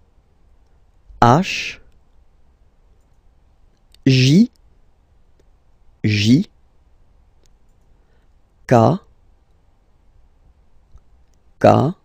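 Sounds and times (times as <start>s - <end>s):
man saying one syllable: 1.2s - 1.9s, 4.0s - 4.6s, 6.0s - 6.5s, 8.7s - 9.1s, 11.6s - 12.0s.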